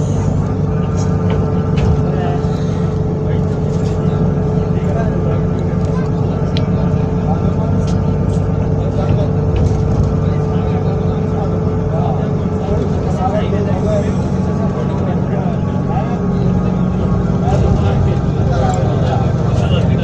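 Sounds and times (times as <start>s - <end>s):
bus engine and road drone: 0.0s - 20.0s.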